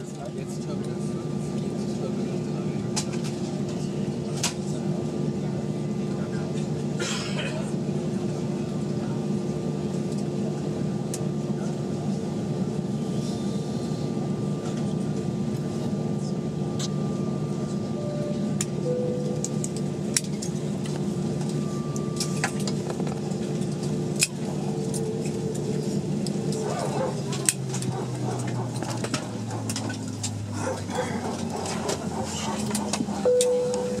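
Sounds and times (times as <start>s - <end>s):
aircraft engines humming: 0.0s - 34.0s.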